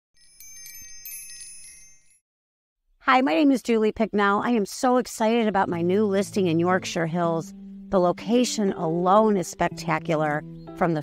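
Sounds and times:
shimmering chime tones: 0.2 - 2.2.

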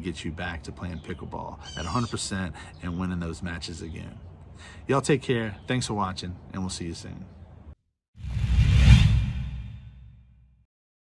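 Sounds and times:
whoosh with low rumble: 8.2 - 10.6.

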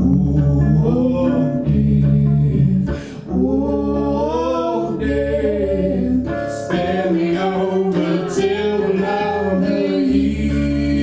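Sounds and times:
lap guitar: 0.0 - 11.0
voices singing in harmony: 0.0 - 11.0.

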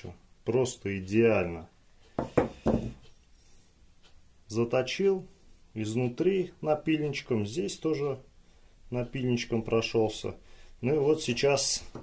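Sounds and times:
metal tube knocking: 2.2 - 3.0.

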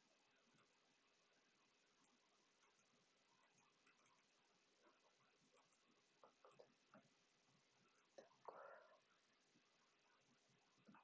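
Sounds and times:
computer mouse clicks: 2.6 - 7.2
person whispering: 8.2 - 9.1.

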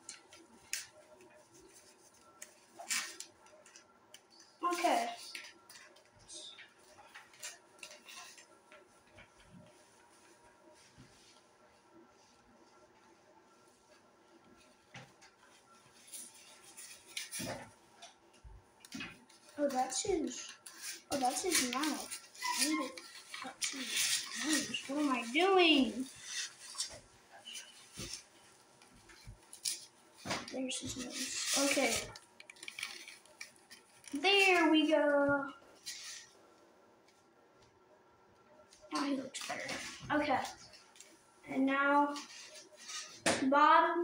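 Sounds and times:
rubber mask rustling: 0.0 - 36.6
faint cloth handling noise: 0.0 - 43.3.

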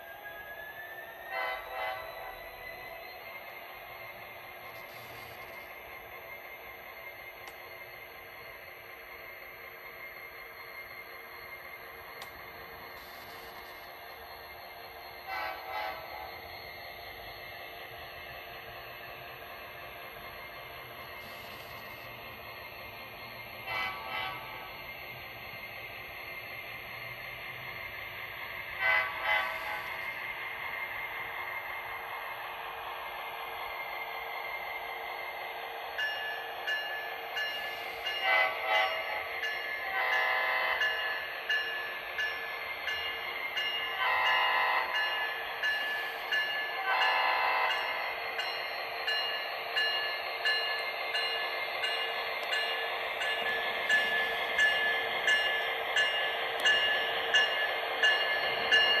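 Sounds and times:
train horn blasts: 1.3 - 2.3, 15.3 - 16.2, 23.6 - 24.7, 28.8 - 30.0, 38.2 - 39.2, 39.9 - 40.8, 44.0 - 44.9, 46.9 - 47.8.

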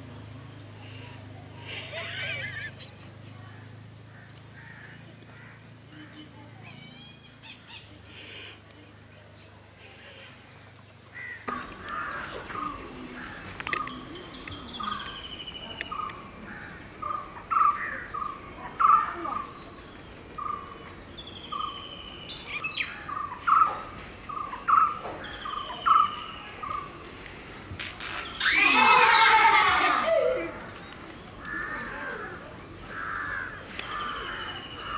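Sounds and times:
loud falling bird cry: 27.9 - 30.8.

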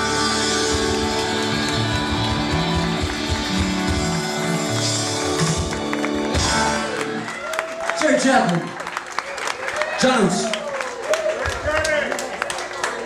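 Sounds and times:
drums: 0.0 - 7.3
bass: 0.0 - 7.5
electric guitars: 0.0 - 7.6.

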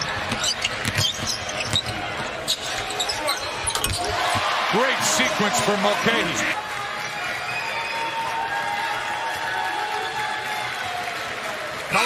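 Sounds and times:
sneakers squeaking: 0.0 - 5.1.

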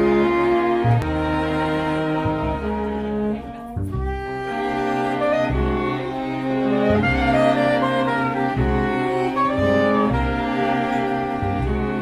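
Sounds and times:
string quartet playing slow waltz: 0.0 - 12.0.

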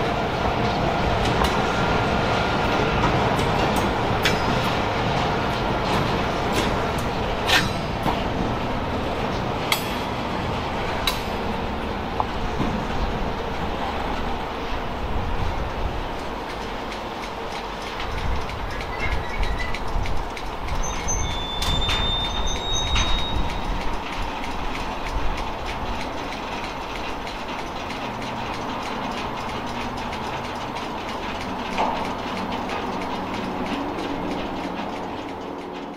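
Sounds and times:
freight car wheels rumbling: 0.0 - 35.9
high-pitched wheel squeals: 20.7 - 23.8.

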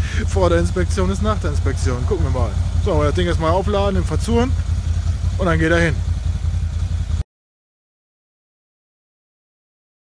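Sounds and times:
engine idling: 0.0 - 7.2.

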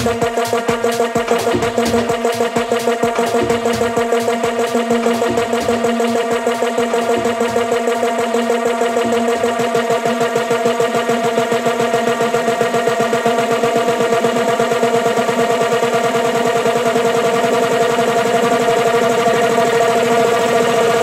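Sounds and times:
deep bass: 0.0 - 8.0
held synth chord: 0.0 - 12.8
rapid drum roll: 0.0 - 17.7.

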